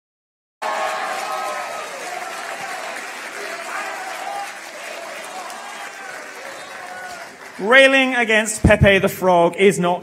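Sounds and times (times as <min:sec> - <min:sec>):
audience applauding: 0:00.6 - 0:08.6.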